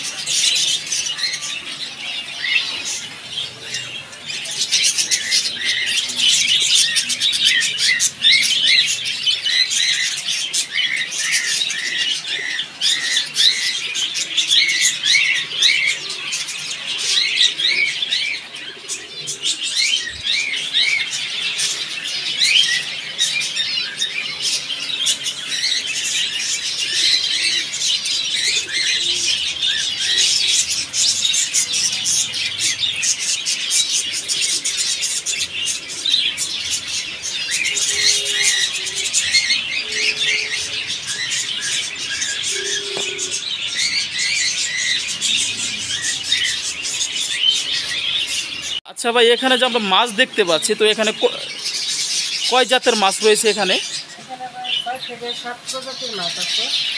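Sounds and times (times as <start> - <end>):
small birds chirping: 0.0 - 56.9.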